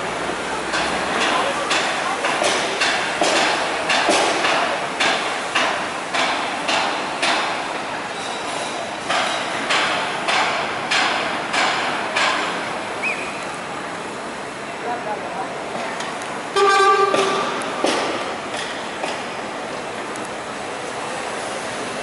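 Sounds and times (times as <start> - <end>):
hammer striking metal: 0.7 - 7.6, 9.0 - 12.5, 16.6 - 19.3.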